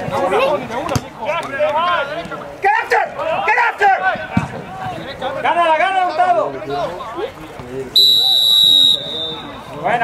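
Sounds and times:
referee's whistle blast: 8.0 - 9.6.

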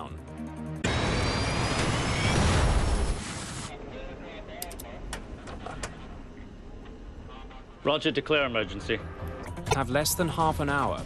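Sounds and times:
background music: 0.0 - 0.8, 8.4 - 11.0
jet engine rising whine: 0.8 - 8.8.

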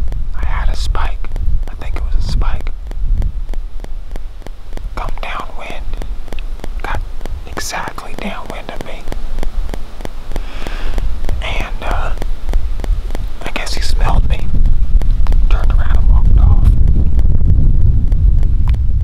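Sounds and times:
low steady rumble: 0.0 - 19.0
man whispering: 0.4 - 2.7, 5.0 - 6.0, 6.8 - 9.1, 11.4 - 12.2, 13.4 - 14.5, 15.5 - 16.8.

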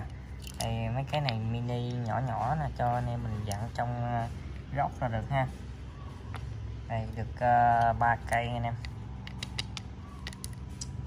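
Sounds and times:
screwdrivers clicking on concrete floor: 0.0 - 2.2, 7.7 - 11.0
steady low hum: 0.0 - 11.0.

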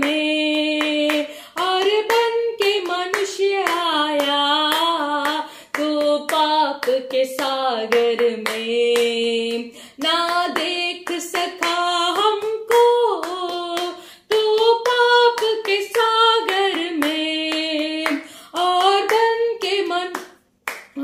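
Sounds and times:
woman singing: 0.0 - 20.3
hands clapping in time: 0.0 - 21.0.

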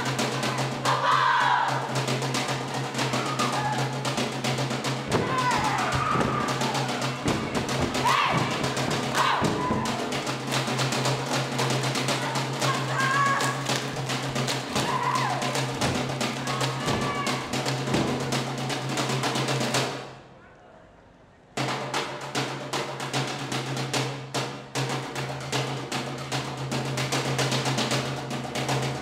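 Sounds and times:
fast dense drumming: 0.0 - 20.0
high voices whooping: 2.7 - 4.0, 5.1 - 10.2, 12.2 - 13.8, 14.7 - 17.7.

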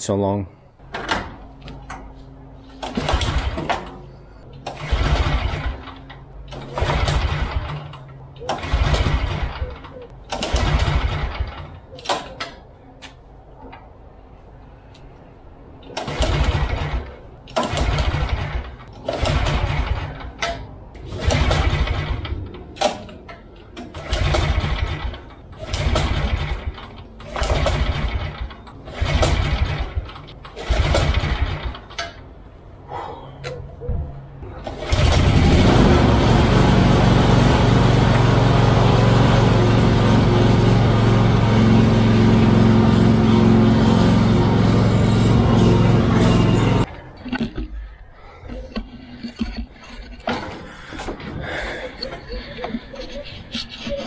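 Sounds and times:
mower engine running: 2.6 - 11.7, 23.9 - 31.9, 34.4 - 46.9
mower pull-start cranking: 2.8 - 12.6, 15.8 - 32.2, 34.5 - 47.8.

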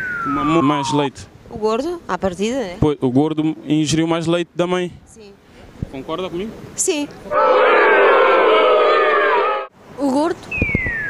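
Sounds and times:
voices holding a long note: 7.3 - 9.7.

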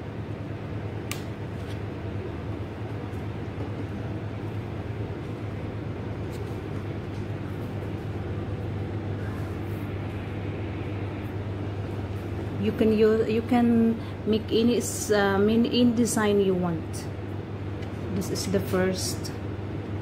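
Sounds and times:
low machine hum with hiss: 0.0 - 20.0.

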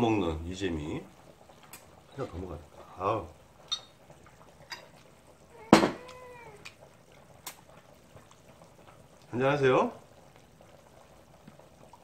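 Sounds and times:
glass bottle clinking: 3.7 - 3.9, 5.7 - 6.1
cat meowing: 5.5 - 6.8.

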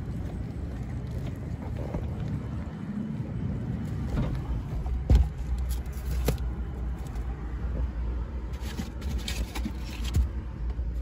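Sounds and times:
car rumble: 0.0 - 11.0.

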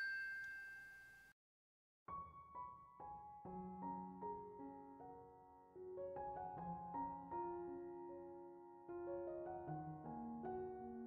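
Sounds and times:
chiming glockenspiel jingle: 0.0 - 1.3.

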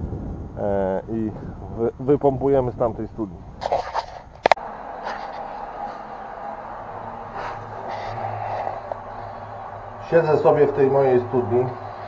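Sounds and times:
water rushing: 4.6 - 12.0.

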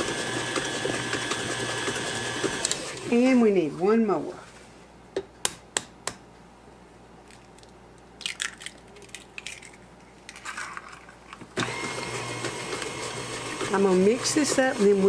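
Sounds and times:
stand mixer motor running: 0.0 - 3.1, 11.6 - 15.0
eggshell crackling: 7.2 - 11.5.

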